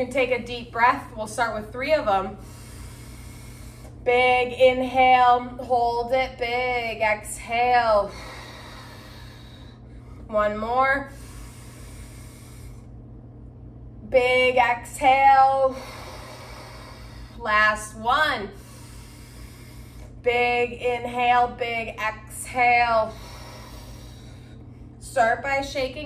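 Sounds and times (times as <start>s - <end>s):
low hum: 0.0s - 26.0s
woman exhaling slowly: 8.0s - 10.3s, 15.5s - 17.5s, 23.0s - 24.7s
woman inhaling deeply: 8.0s - 10.3s, 11.1s - 12.9s, 15.7s - 17.4s, 23.0s - 24.9s.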